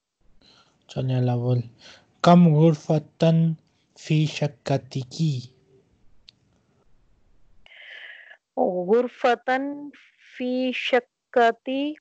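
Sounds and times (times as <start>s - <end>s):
person speaking a syllable: 0.9s - 5.5s.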